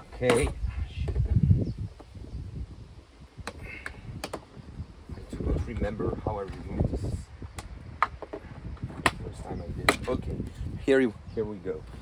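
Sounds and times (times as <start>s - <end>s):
plastic clicks and knocks: 3.4s - 4.5s.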